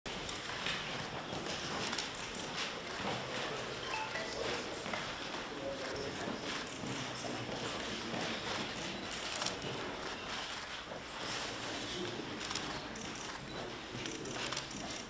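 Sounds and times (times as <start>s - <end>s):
room hubbub: 0.1s - 15.0s
camera shutters clicking: 1.8s - 2.2s, 9.2s - 9.7s, 12.4s - 13.4s, 14.0s - 15.0s.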